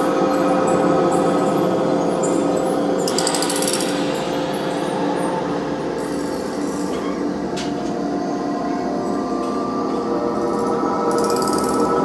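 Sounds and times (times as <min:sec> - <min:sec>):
electronic drone music: 0:00.0 - 0:12.0.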